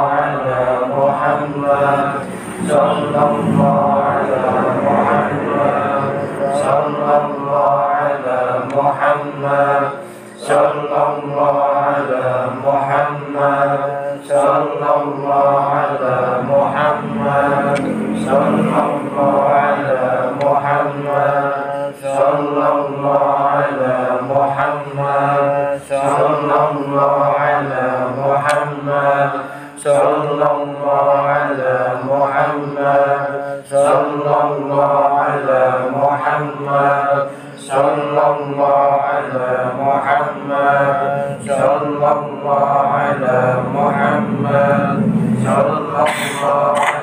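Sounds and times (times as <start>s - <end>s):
men chanting in unison: 0.0s - 47.0s.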